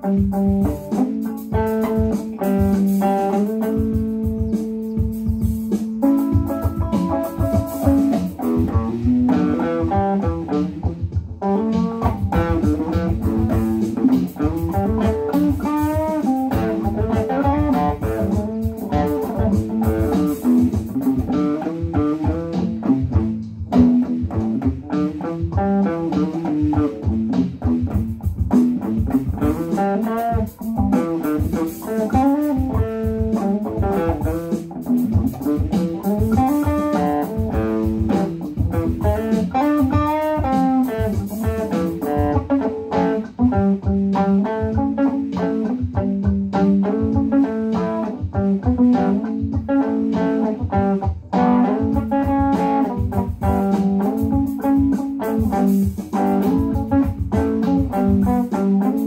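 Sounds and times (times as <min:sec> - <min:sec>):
bluesy electric guitar: 0:00.0 - 0:59.0
programmed drum backing track: 0:00.0 - 0:59.0.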